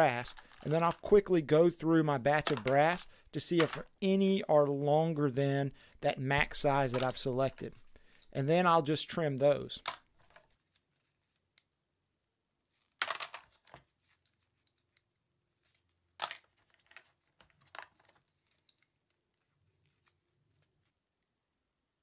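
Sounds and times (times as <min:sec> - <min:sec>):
brass cartridge cases clinking: 0:06.6 - 0:07.6.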